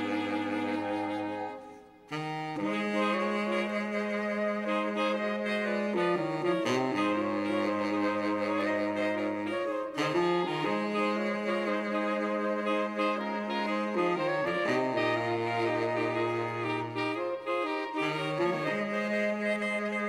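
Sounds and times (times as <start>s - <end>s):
soprano saxophone melody: 0.0s - 20.0s.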